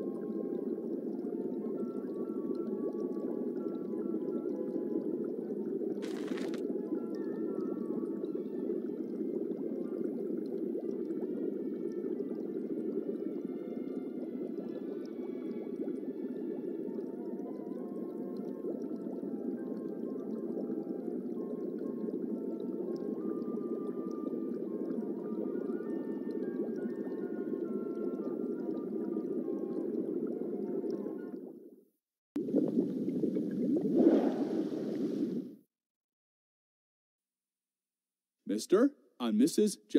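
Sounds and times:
rushing swell of bubbles: 0.0s - 31.5s, 32.4s - 35.6s
faint musical tones: 6.7s - 31.5s.

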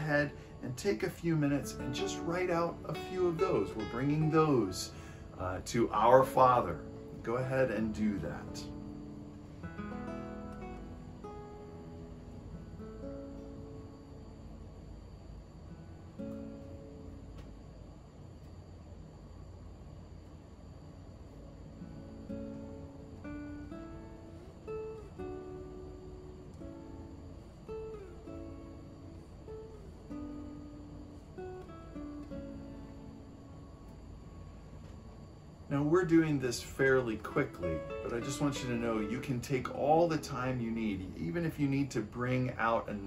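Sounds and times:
soft plucked string music: 0.0s - 14.7s, 15.7s - 17.7s, 21.4s - 35.1s, 35.8s - 43.0s.

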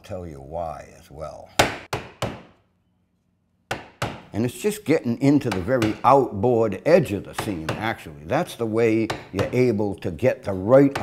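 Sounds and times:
wooden mallet knocking steel iron: 3.7s - 4.3s, 5.5s - 6.2s, 9.1s - 9.6s.

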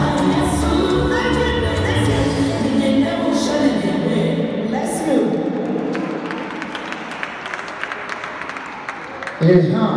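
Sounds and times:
crowd noise: 0.0s - 9.9s
audience clapping: 5.5s - 9.6s.

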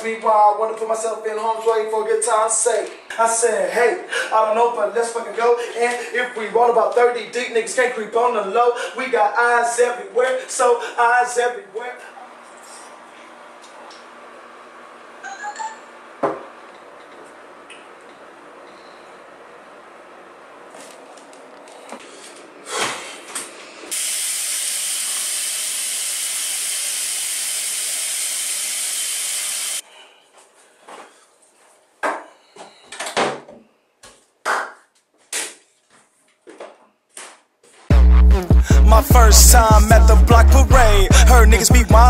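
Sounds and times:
footsteps in a small room: 20.6s - 23.8s, 30.2s - 32.9s, 33.5s - 38.1s.

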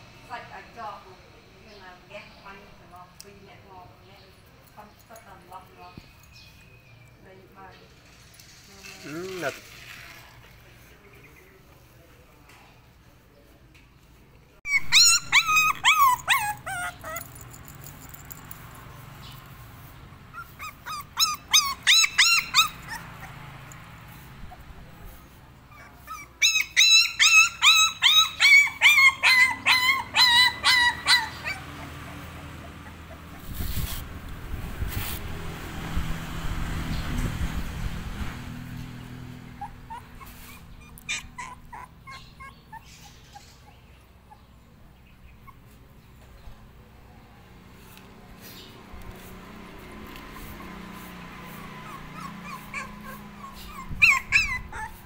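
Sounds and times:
puppy whimpering and yelping: 14.6s - 18.5s, 20.3s - 34.3s, 39.4s - 44.6s, 45.2s - 45.9s, 49.9s - 55.0s.

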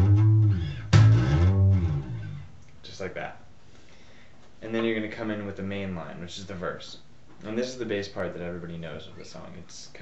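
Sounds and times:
slapped electric bass slides: 0.0s - 2.6s.

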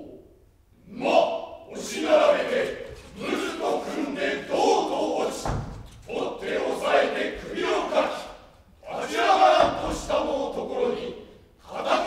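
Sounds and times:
men shouting battle cries: 8.8s - 11.1s.

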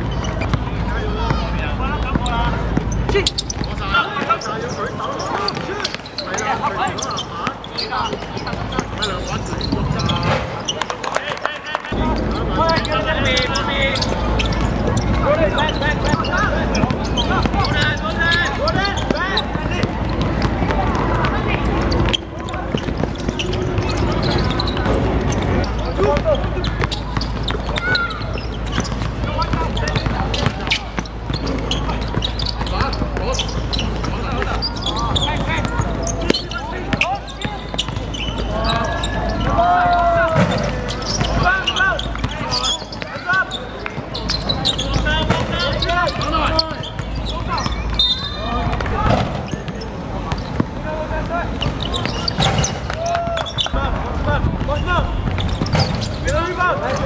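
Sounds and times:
basketball bouncing: 0.0s - 6.2s, 6.9s - 11.2s, 11.9s - 57.0s.

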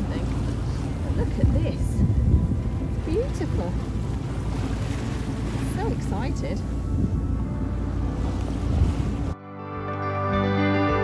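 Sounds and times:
water washing past hull: 0.0s - 9.4s
wind buffeting microphone: 0.0s - 9.4s.

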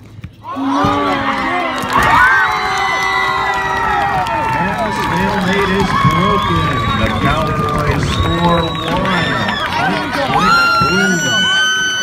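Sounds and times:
crowd cheering and yelling: 0.4s - 12.0s.

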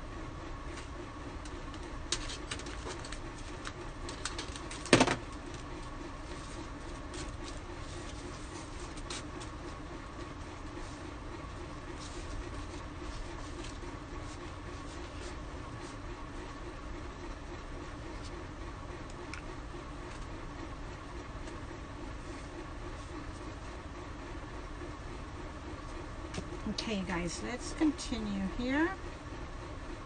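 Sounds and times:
low machine hum: 0.0s - 30.0s.

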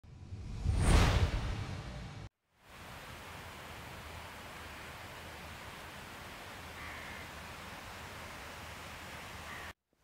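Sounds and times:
whoosh: 0.1s - 2.3s.

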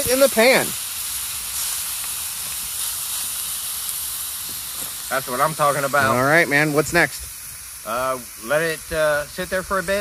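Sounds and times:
steak sizzling in skillet: 0.0s - 10.0s.

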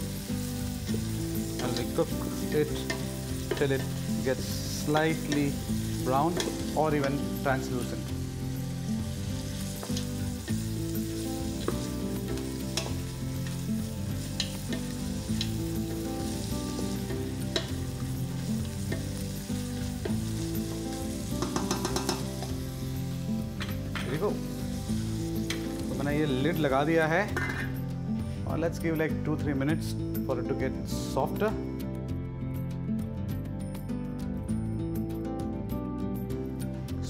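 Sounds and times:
food sizzling in hot oil: 0.0s - 28.1s
soft background music: 0.0s - 37.0s
spatula knocking against pot: 21.4s - 22.4s.

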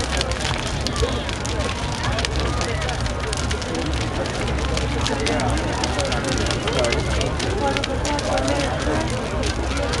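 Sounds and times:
crowd chattering: 0.0s - 10.0s
fire crackling and popping: 0.0s - 10.0s
low rumble of flames: 0.0s - 10.0s.

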